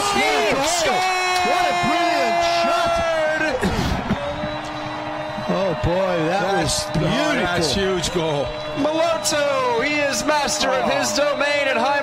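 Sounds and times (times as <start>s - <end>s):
long held shout: 0.0s - 4.4s
excited shouting voices: 0.0s - 8.0s.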